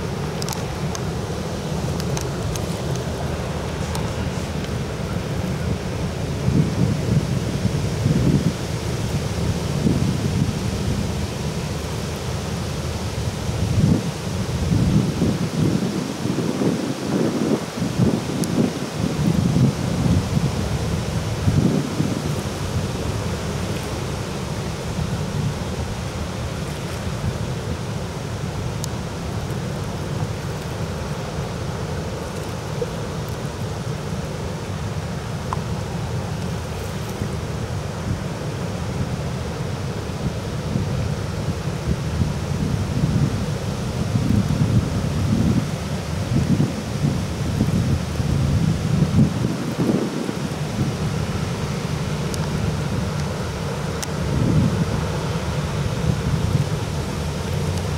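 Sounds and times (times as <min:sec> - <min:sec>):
wind buffeting microphone: 0:00.0 - 0:11.9, 0:12.9 - 0:28.6, 0:40.2 - 0:57.9
ship engine low rumble: 0:00.0 - 0:57.9.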